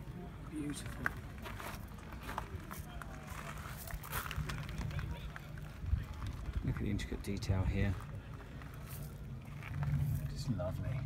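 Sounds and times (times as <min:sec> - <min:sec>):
people chattering: 0:00.0 - 0:11.0
steady low rumble: 0:03.4 - 0:11.0.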